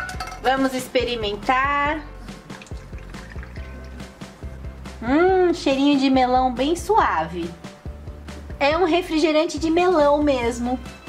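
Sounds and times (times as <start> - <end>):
background music with beat: 0.0 - 9.0
soda pouring into plastic cup: 2.5 - 4.1.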